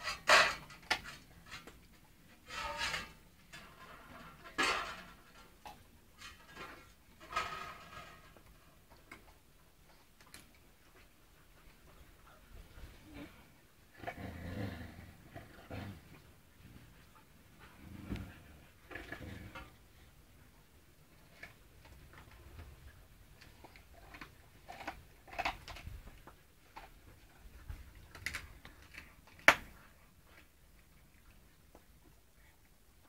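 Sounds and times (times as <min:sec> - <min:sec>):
dogs growling: 0:11.6 - 0:20.1.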